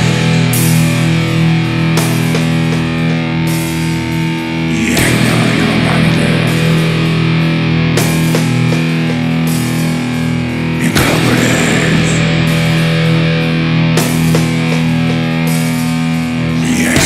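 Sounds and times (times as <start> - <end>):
distorted electric guitar chords: 0.0 - 17.0.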